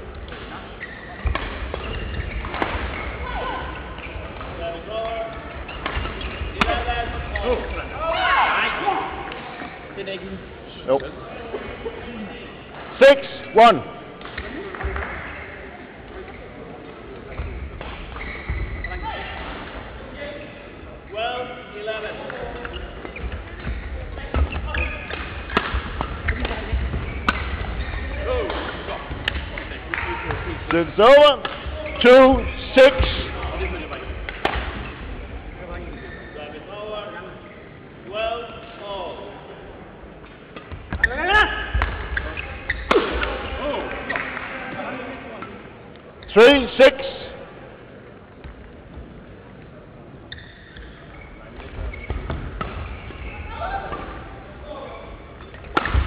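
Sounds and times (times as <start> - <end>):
rackets hitting shuttlecock: 1.2 - 3.0, 5.8 - 7.6, 22.2 - 30.8, 31.4 - 31.8, 33.0 - 34.9, 41.7 - 43.5, 51.6 - 53.0, 55.4 - 56.0.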